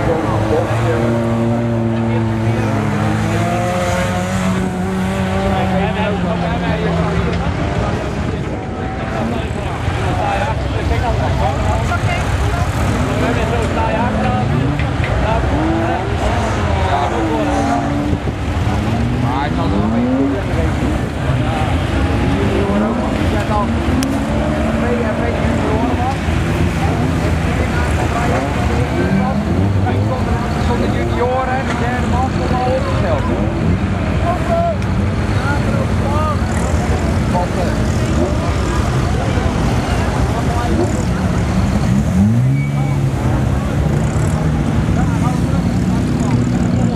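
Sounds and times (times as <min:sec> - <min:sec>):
racing car engines revving: 0:00.0 - 0:46.9.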